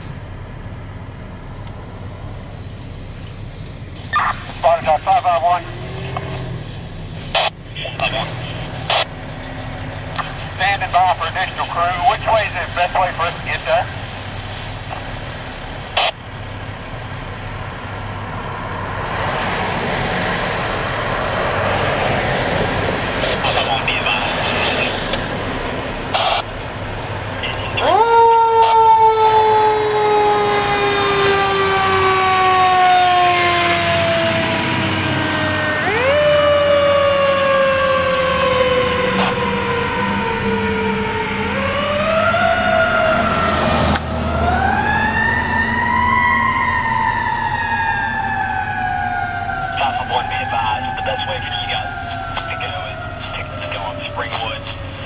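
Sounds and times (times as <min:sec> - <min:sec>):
diesel truck engine running: 0:00.0 - 0:55.0
fire engine mechanical siren: 0:03.9 - 0:19.0, 0:19.7 - 0:55.0.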